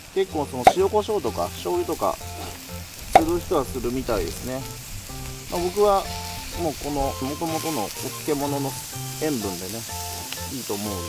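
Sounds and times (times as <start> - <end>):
cabbage sizzling in a frying pan: 0.0 - 11.0
person talking: 0.2 - 2.6, 3.2 - 4.8, 5.5 - 11.0
sharp knock: 3.1 - 3.6.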